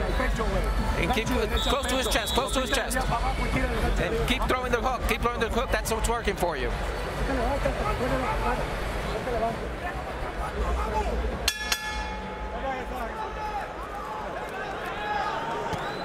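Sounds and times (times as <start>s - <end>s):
arena crowd hubbub: 0.0s - 16.0s
boxing ring bell clang: 11.5s - 12.9s.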